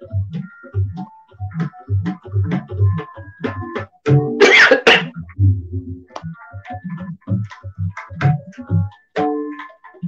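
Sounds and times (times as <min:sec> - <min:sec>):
tabla drumming: 0:00.0 - 0:10.0
person coughing harshly: 0:04.4 - 0:05.2.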